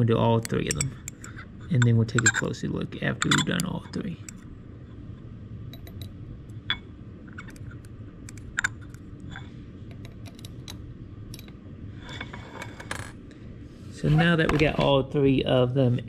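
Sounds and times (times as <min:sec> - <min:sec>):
steady low hum: 0:00.0 - 0:16.0
metal probe tapping glass: 0:00.4 - 0:02.5, 0:03.2 - 0:04.4, 0:05.8 - 0:06.1.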